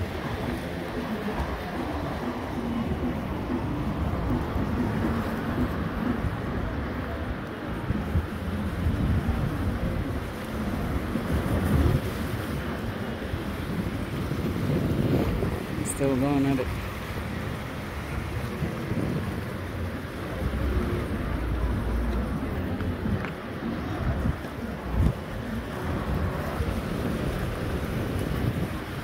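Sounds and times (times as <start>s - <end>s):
waves washing against rocks: 0.0s - 29.0s
wind buffeting microphone: 0.0s - 29.0s.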